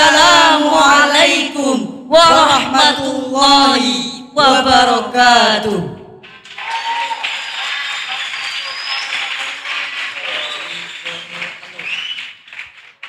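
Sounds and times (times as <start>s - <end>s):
audience applause: 6.2s - 13.0s
voices and cheers: 6.3s - 12.1s.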